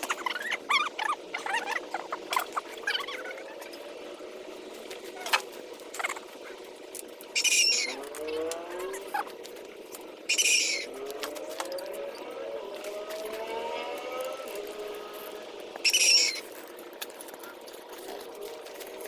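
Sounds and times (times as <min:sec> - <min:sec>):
birds calling: 0:00.0 - 0:19.0.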